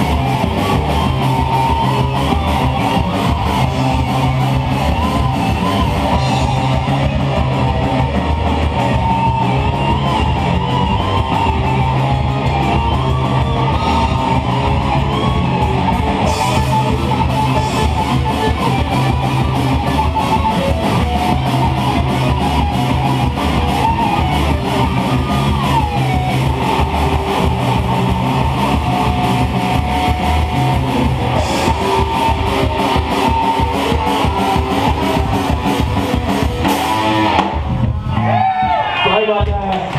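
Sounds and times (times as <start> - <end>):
bass guitar: 0.0 - 39.9
distorted electric guitars: 0.0 - 39.9
fast drumming: 0.0 - 39.9.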